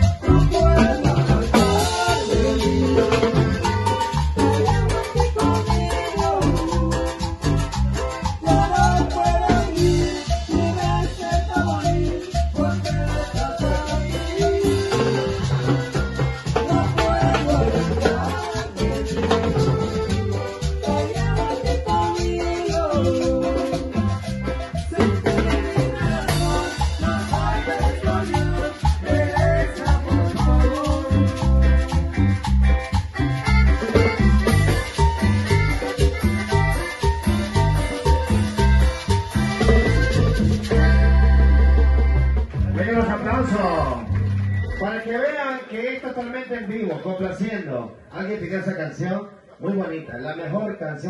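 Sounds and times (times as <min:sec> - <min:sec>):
bass line: 0:00.0 - 0:45.1
conga drums: 0:00.0 - 0:45.1
electric guitar: 0:00.0 - 0:45.1
accordion: 0:00.0 - 0:46.6.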